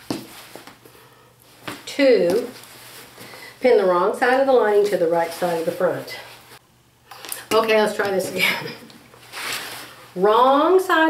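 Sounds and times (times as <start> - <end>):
fabric rustling: 0.0 - 3.5, 4.6 - 6.6, 9.2 - 10.2.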